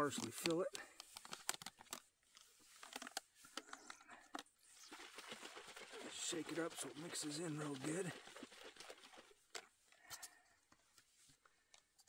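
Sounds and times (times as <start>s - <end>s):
water sloshing in shaken bottle: 2.8s - 10.0s.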